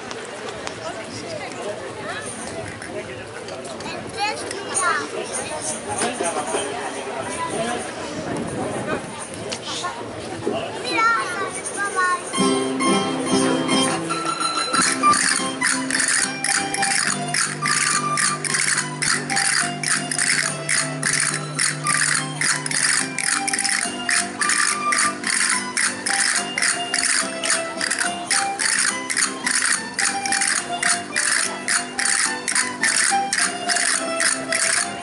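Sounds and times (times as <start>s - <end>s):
folk dance music: 12.3s - 35.0s
jingling percussion beat: 12.4s - 35.0s.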